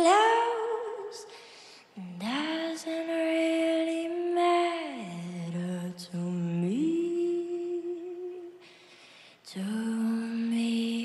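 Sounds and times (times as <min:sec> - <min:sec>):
girl singing long held notes: 0:00.0 - 0:11.0.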